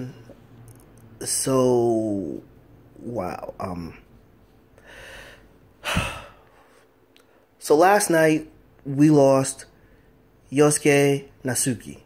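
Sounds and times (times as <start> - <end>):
man breathing in softly: 4.8 - 6.8
sharp burst of breath: 4.8 - 6.8.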